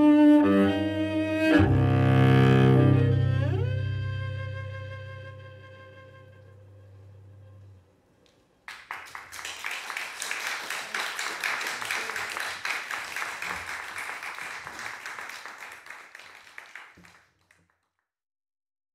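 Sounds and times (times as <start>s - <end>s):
audience applause: 8.6s - 17.7s.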